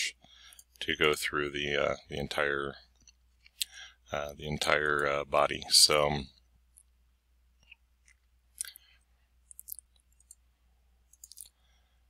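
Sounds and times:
person speaking: 3.5s - 6.4s.

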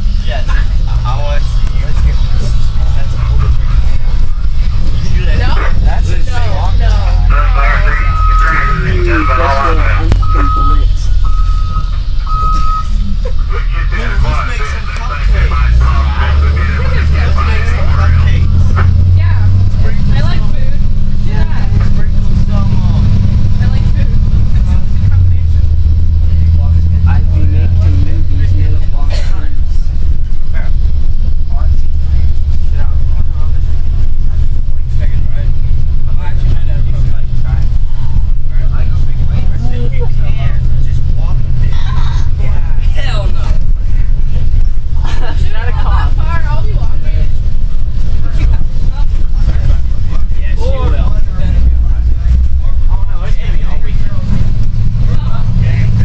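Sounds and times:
bus engine rumble: 0.0s - 56.0s
passengers talking: 0.0s - 56.0s
short high beeps: 8.0s - 13.4s.

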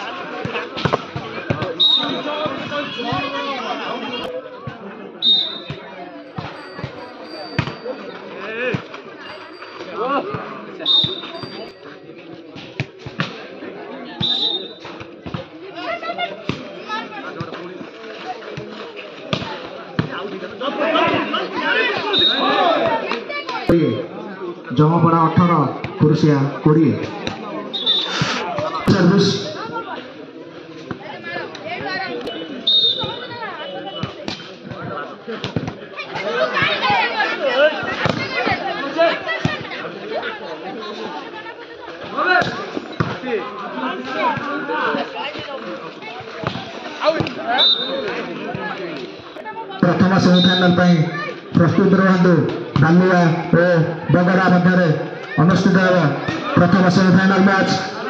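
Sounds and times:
players and spectators shouting: 0.0s - 11.8s, 20.4s - 30.1s, 31.0s - 45.7s, 46.8s - 58.0s
crowd murmur: 0.0s - 58.0s.

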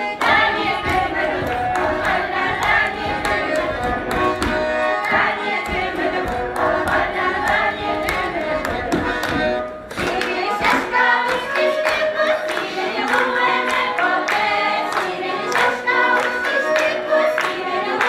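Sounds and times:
accordion playing a dance tune: 0.0s - 18.0s
group singing: 0.0s - 18.0s
hand clapping and stamping: 0.0s - 18.0s.

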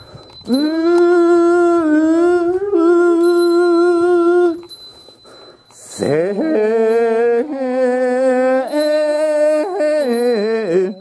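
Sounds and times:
person chanting a hymn: 5.8s - 11.0s.

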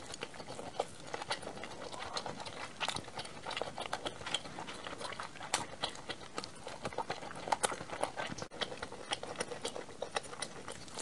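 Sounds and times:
close chewing with mouth clicks: 0.0s - 11.0s.

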